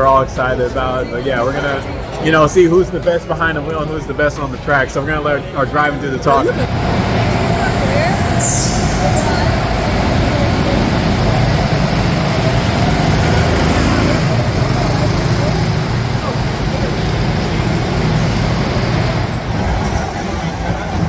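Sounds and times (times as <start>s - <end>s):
go-kart engines: 0.0s - 21.0s.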